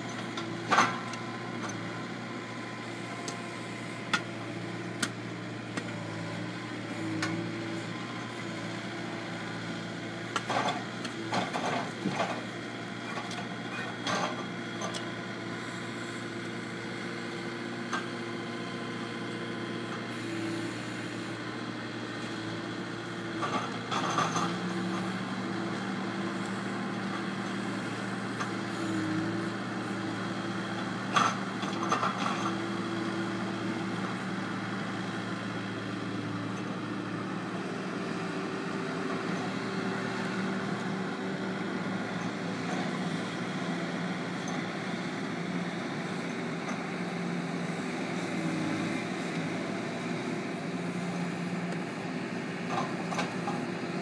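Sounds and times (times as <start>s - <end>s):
loader engine running: 0.0s - 54.0s.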